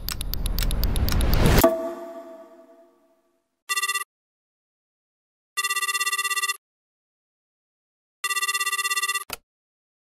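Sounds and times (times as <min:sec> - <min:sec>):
telephone ringing: 0:03.7 - 0:04.1, 0:05.6 - 0:06.6, 0:08.2 - 0:09.3.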